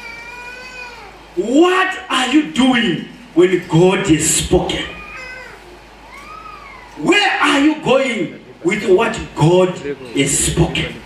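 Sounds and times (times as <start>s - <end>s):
high-pitched cries: 0.0s - 1.4s, 4.8s - 7.1s.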